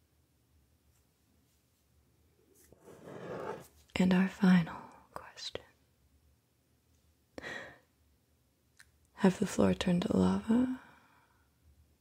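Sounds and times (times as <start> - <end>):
woman's soft breath: 7.4 - 7.9.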